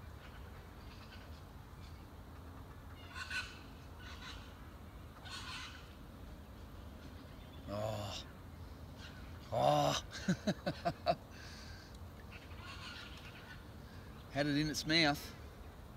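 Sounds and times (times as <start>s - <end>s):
short bird calls: 0.0s - 6.1s, 6.8s - 10.0s, 11.4s - 15.4s
low steady outdoor hum: 0.0s - 15.9s.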